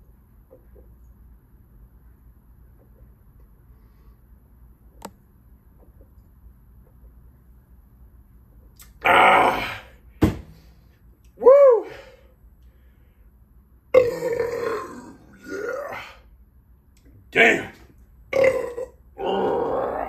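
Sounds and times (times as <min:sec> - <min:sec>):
man belching and gasping: 0:13.9 - 0:16.2, 0:18.3 - 0:20.0.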